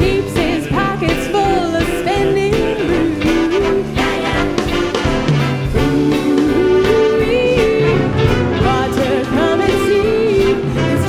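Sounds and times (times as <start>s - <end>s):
woman singing: 0.0s - 5.0s, 5.8s - 11.0s
jazz big band playing: 0.0s - 11.0s.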